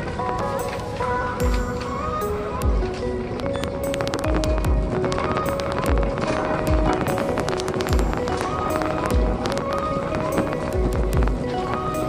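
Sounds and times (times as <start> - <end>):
instrumental beat music: 0.4 - 12.0.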